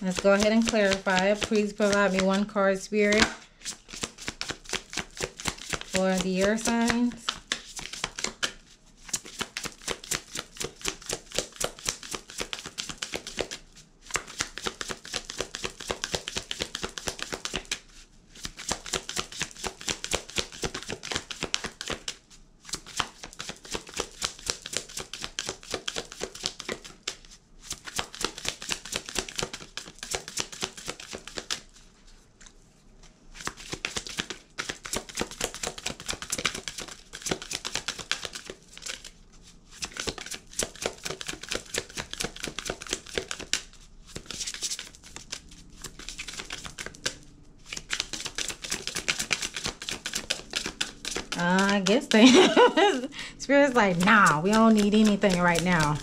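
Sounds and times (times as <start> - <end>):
cards being shuffled: 0.0 - 32.6, 33.4 - 53.1, 53.7 - 56.0.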